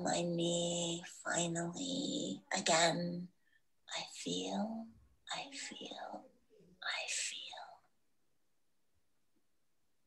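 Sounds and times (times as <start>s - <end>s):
person whispering: 3.9s - 7.8s.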